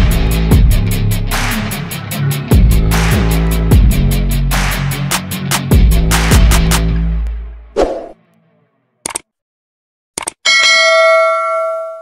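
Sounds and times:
bell ringing: 0:10.5 - 0:12.0.

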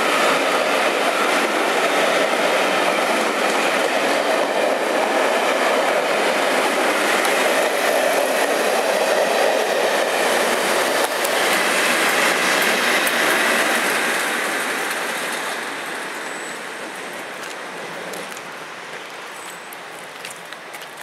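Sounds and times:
diesel locomotive passing: 0:00.0 - 0:21.0
train wheels rumbling on rails: 0:00.0 - 0:21.0.

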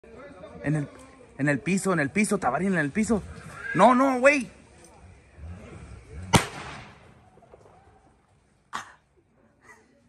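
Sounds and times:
sharp crack with ringing tail: 0:06.2 - 0:07.2.

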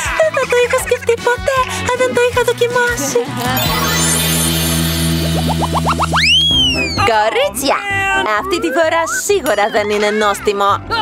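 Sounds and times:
held chord: 0:03.6 - 0:05.9
rising cartoon boings: 0:03.6 - 0:07.1
whistle-like swoop: 0:03.7 - 0:07.1.

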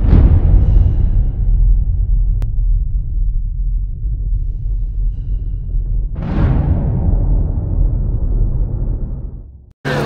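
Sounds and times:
cinematic boom rumble: 0:00.0 - 0:10.0.

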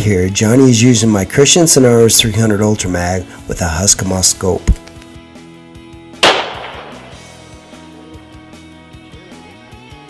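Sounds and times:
background music: 0:00.0 - 0:10.0
rifle shot: 0:06.2 - 0:07.5.

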